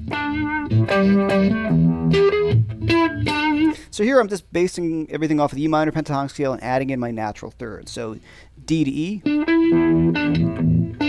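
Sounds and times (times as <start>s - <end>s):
bluesy electric guitar phrase: 0.0s - 3.9s, 9.0s - 11.0s.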